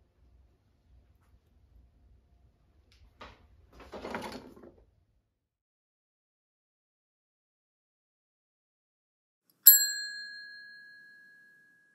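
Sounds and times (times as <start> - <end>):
bell-like ding: 9.7 - 11.9.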